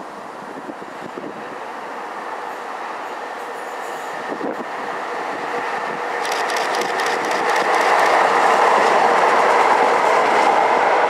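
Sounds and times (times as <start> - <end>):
trains pulling away and passing: 0.0 - 11.0
rapid wheel clicks over rails: 6.2 - 10.5.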